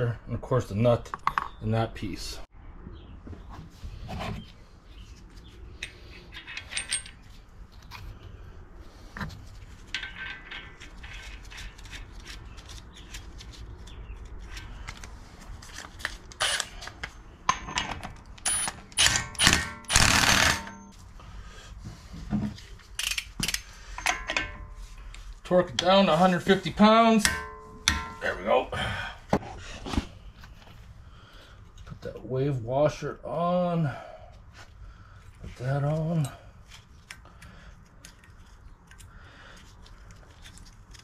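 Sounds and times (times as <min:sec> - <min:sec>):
metal clinks and knocks: 0:05.8 - 0:07.3, 0:09.8 - 0:12.0, 0:23.0 - 0:24.9, 0:27.3 - 0:28.3.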